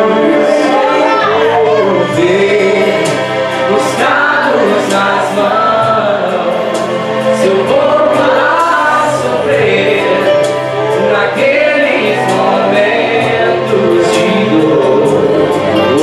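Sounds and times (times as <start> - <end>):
instrumental accompaniment: 0.0 - 16.0
man singing a hymn: 0.0 - 16.0.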